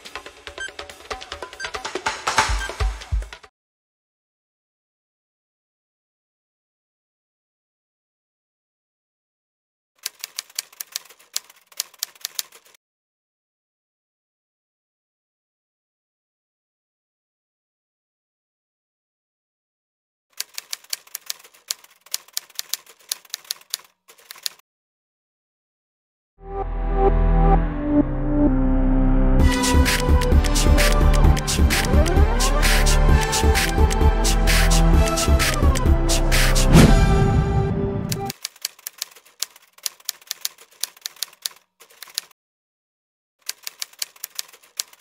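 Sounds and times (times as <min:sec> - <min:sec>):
typewriter keys clacking: 0:10.0 - 0:12.8, 0:20.4 - 0:24.6, 0:32.7 - 0:35.9, 0:38.1 - 0:42.3, 0:43.4 - 0:45.0
loud music: 0:26.5 - 0:38.3.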